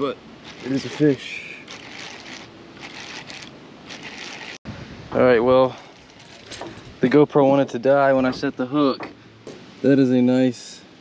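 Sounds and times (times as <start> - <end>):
fishing reel gears whirring: 0.4 - 4.6.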